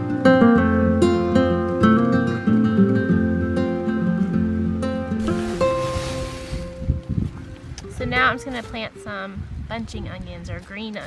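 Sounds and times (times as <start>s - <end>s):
acoustic guitar chord ringing: 0.0s - 8.4s
rustling: 5.2s - 7.8s
wind on microphone: 5.2s - 11.0s.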